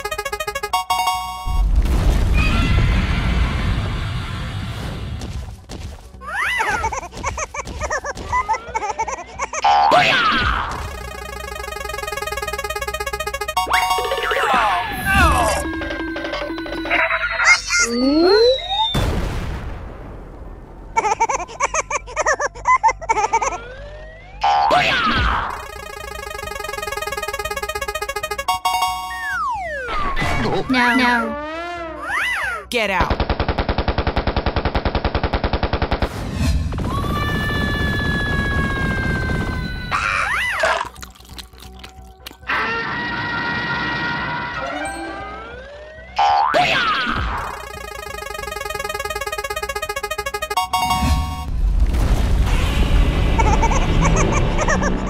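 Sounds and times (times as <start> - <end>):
electronic blips: 0.0 - 1.8, 10.8 - 19.0, 25.4 - 29.9, 47.3 - 51.6.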